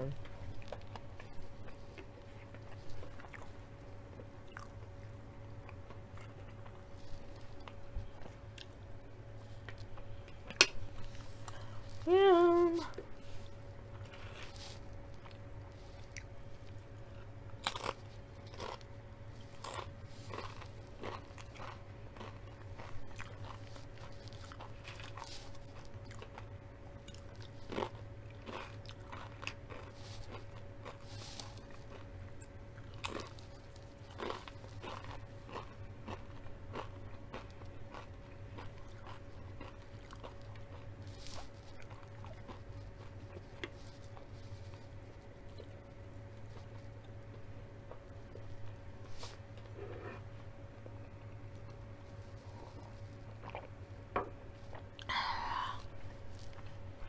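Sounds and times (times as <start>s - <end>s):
faint steady hum: 0.0s - 57.0s
chips being crunched and chewed: 13.9s - 45.8s.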